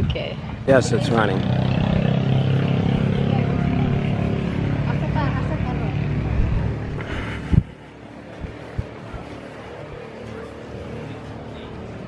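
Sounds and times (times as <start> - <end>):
faint voices: 0.1 - 12.0
engine humming: 0.4 - 12.0.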